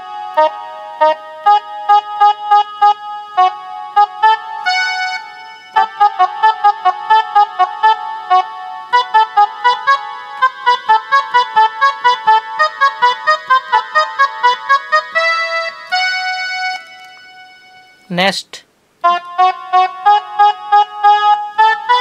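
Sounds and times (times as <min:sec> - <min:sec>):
mini keyboard melody: 0:00.0 - 0:18.1, 0:19.0 - 0:22.0.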